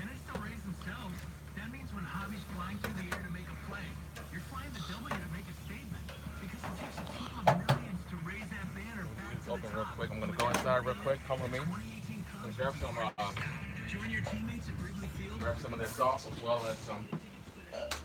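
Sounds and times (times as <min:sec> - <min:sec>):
background talking: 0:00.0 - 0:18.0.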